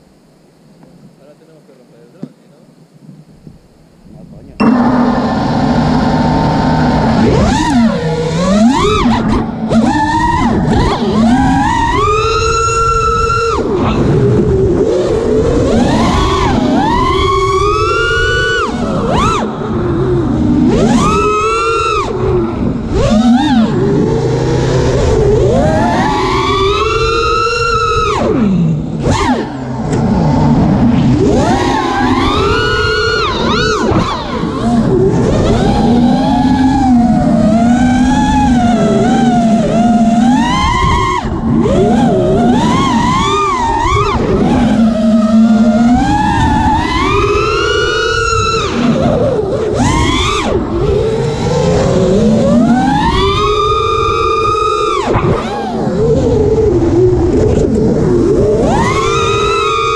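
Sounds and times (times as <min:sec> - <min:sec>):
quadcopter motors whining: 0:00.0 - 0:59.9.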